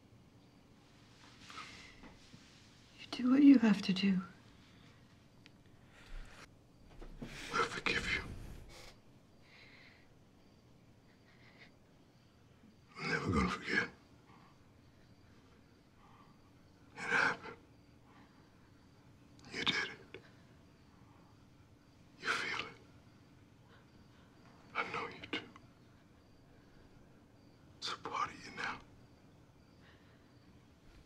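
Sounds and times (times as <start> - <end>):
person whispering: 7.5 - 8.9, 13.0 - 14.0, 19.4 - 20.1, 22.2 - 22.8, 24.8 - 25.5, 27.8 - 28.8.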